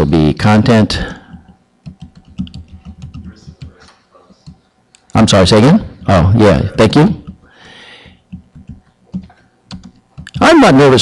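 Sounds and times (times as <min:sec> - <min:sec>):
computer keyboard typing: 0:01.2 - 0:04.6, 0:07.2 - 0:10.6.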